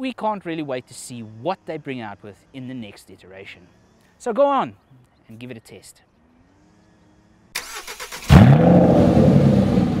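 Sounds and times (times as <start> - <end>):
car engine revving and running: 6.2 - 10.0
car starter cranking: 7.6 - 8.6.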